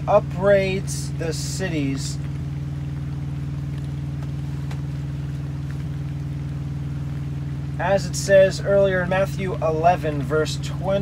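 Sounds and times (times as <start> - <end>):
low droning hum with fast pulse: 0.0 - 11.0.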